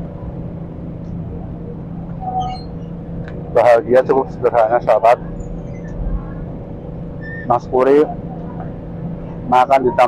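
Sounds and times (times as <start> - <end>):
city road traffic hum: 0.0 - 10.0.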